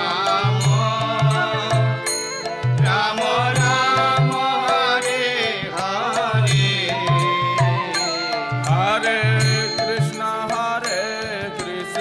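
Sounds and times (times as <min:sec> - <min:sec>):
chanted melody: 0:00.0 - 0:12.0.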